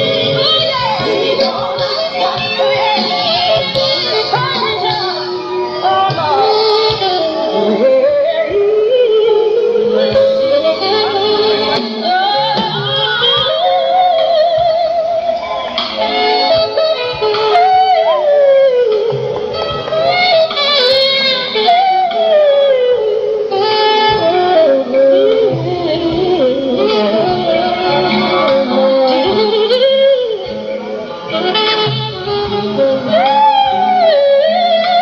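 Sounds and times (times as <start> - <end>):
band playing: 0.0 - 35.0
woman singing soulful ballad: 0.5 - 10.9.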